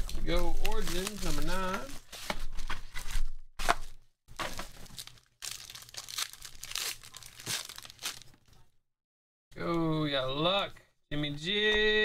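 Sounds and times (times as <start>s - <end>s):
foil wrapper tearing and crinkling: 0.0s - 2.2s, 4.4s - 8.6s.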